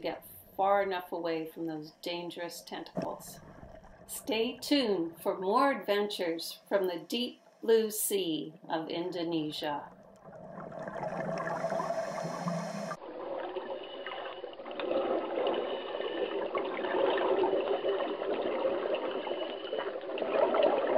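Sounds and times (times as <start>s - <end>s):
water gurgling and sloshing: 0.0s - 20.9s
underwater water wash: 2.9s - 5.5s, 9.9s - 20.9s.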